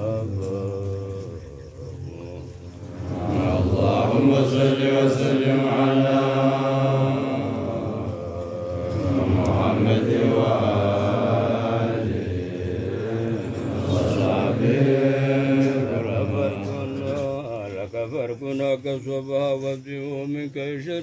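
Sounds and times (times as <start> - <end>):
low drone: 0.0 - 17.9
men chanting together: 0.0 - 21.0.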